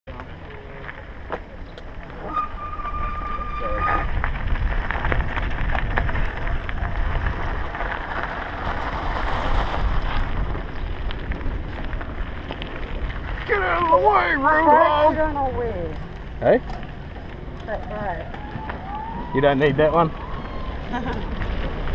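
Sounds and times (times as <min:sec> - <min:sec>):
bike rattling: 0:00.1 - 0:21.9
tyres crunching on gravel: 0:00.1 - 0:21.9
wind buffeting microphone: 0:02.7 - 0:21.9.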